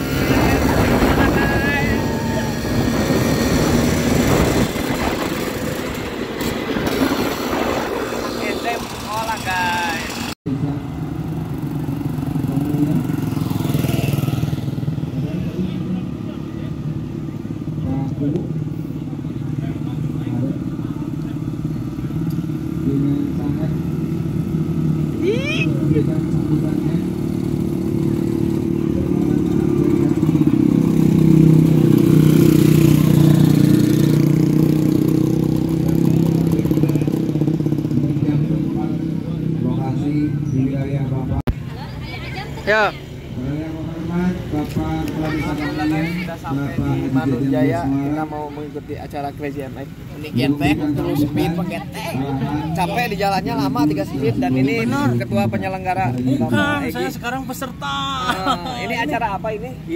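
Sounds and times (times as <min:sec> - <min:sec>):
scooter engine running: 0:00.0 - 0:16.0, 0:19.0 - 0:38.8.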